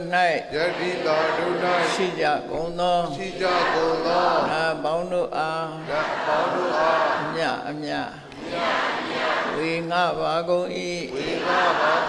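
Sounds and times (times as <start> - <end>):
voices chanting together: 0.5 - 7.7, 8.3 - 9.9, 11.1 - 12.0.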